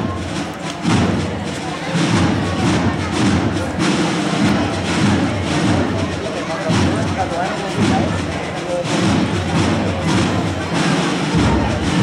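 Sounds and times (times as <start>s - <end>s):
crowd voices: 0.0s - 12.0s
wind band playing: 0.0s - 12.0s.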